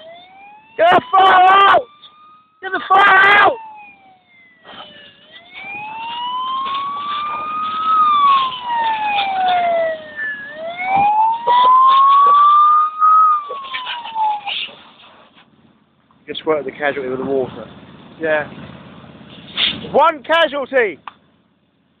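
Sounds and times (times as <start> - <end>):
fire engine siren wailing: 0.0 - 15.6
clicks and crackles: 4.7 - 9.8, 13.4 - 16.2.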